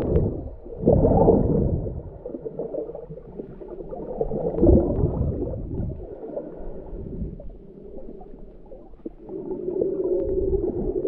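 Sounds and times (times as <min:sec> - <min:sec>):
low steady hum: 0:00.0 - 0:11.0
underwater moving water: 0:00.0 - 0:11.0.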